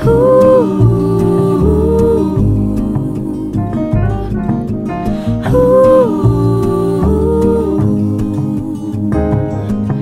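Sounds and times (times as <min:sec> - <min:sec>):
woman humming: 0:00.0 - 0:09.6
bass: 0:00.0 - 0:10.0
plucked acoustic guitar: 0:00.0 - 0:10.0.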